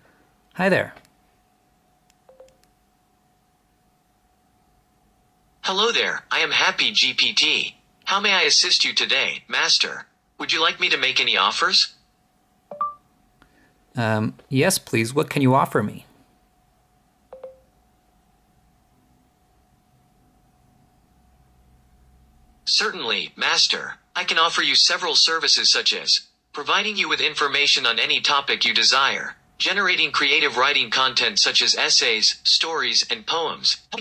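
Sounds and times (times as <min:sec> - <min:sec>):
phone two-note beep: 0:02.3 - 0:02.6, 0:12.7 - 0:13.0, 0:17.3 - 0:17.7
two-note electronic beep: 0:12.7 - 0:13.0.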